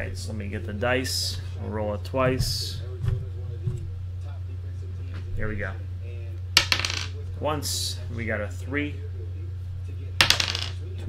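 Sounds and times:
steady low hum: 0:00.0 - 0:11.0
die clattering on tabletop: 0:06.6 - 0:07.2, 0:10.2 - 0:10.8.

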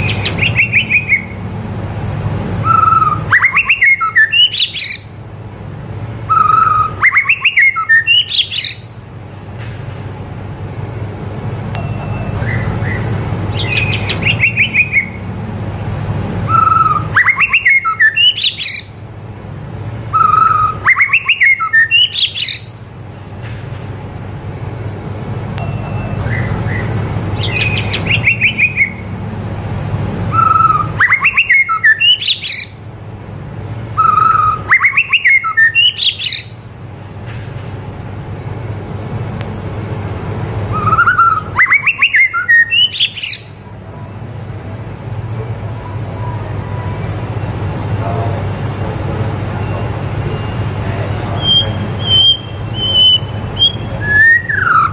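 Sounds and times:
bird singing: 0:00.0 - 0:01.5, 0:02.6 - 0:05.2, 0:06.3 - 0:09.0, 0:11.8 - 0:15.3, 0:16.5 - 0:19.1, 0:20.1 - 0:22.8, 0:25.6 - 0:29.2, 0:30.3 - 0:32.9, 0:34.0 - 0:36.6, 0:40.7 - 0:43.7, 0:49.6 - 0:54.9
steady low hum: 0:00.0 - 0:21.9, 0:22.6 - 0:32.0, 0:32.6 - 0:35.8, 0:36.4 - 0:42.5.

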